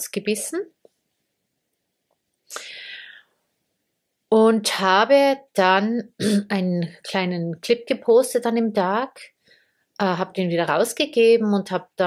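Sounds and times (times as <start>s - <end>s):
woman drawing a breath: 2.5s - 3.5s, 9.4s - 9.9s.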